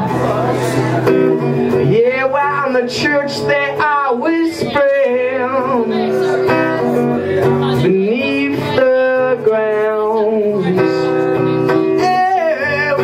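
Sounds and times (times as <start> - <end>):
man singing: 0.0 - 13.0
strummed acoustic guitar: 0.0 - 13.0.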